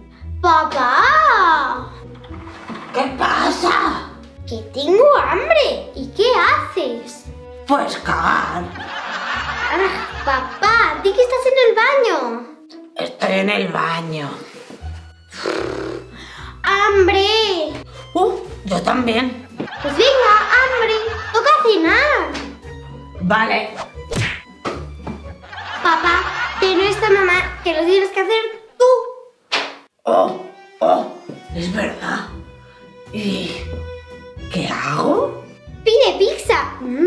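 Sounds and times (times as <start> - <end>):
soft background music: 0.0 - 28.9, 29.9 - 37.0
sharp whack: 23.8 - 25.2, 29.5 - 29.9.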